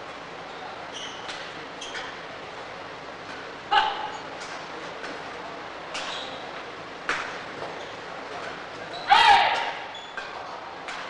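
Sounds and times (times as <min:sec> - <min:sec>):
shoe squeak on court mat: 0:00.9 - 0:02.2, 0:06.0 - 0:06.5, 0:08.9 - 0:09.2, 0:09.9 - 0:10.4.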